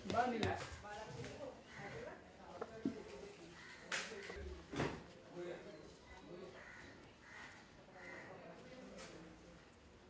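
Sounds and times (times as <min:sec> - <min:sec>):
faint crows cawing: 0:01.5 - 0:02.4, 0:03.3 - 0:04.5, 0:06.0 - 0:09.7.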